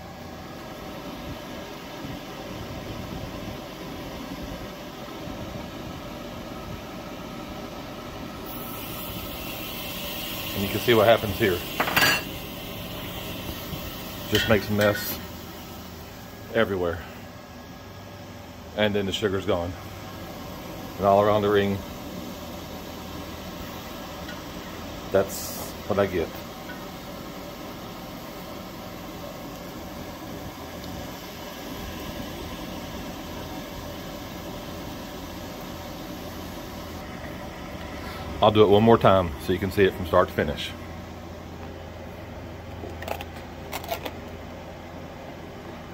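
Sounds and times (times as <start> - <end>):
cotton candy machine running: 0.0 - 17.3, 18.1 - 40.8.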